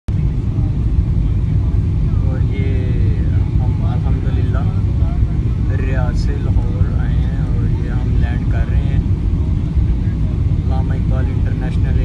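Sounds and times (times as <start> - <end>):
airliner cabin rumble: 0.1 - 12.0.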